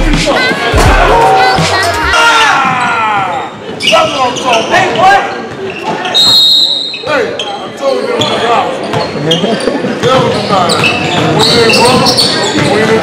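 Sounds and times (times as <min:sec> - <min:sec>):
people shouting: 0:00.0 - 0:03.6
referee's whistle: 0:06.0 - 0:07.1.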